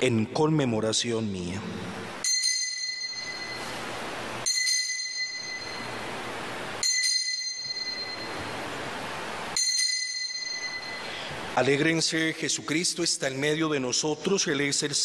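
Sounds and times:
altar bell ringing: 2.2s - 12.3s.

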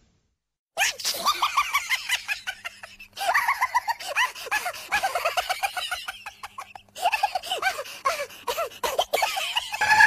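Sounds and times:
person laughing hard: 0.8s - 10.0s.

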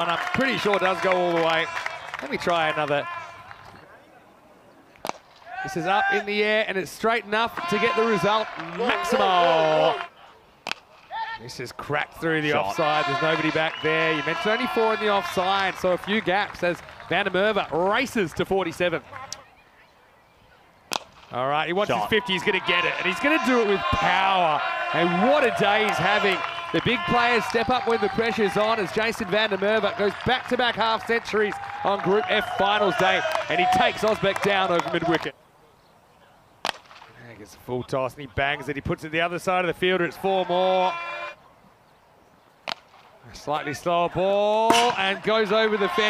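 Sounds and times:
cricket bat striking ball: 44.7s - 45.0s.

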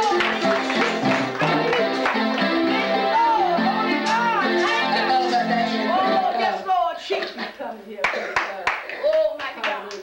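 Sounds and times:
sharp hand claps: 0.0s - 2.5s, 4.0s - 5.5s
indistinct voices: 0.0s - 8.2s.

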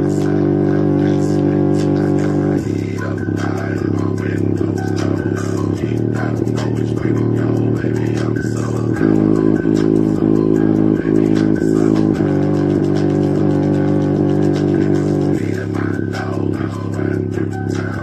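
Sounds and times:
bass-boosted music through speaker: 0.0s - 18.0s.

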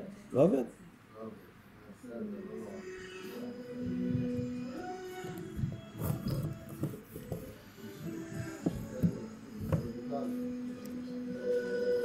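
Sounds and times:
a cappella singing voices: 3.2s - 12.0s.

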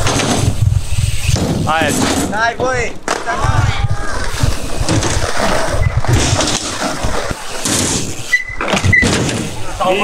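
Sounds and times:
bike rolling over concrete: 0.0s - 10.0s
brief high squeak: 8.3s - 9.1s.

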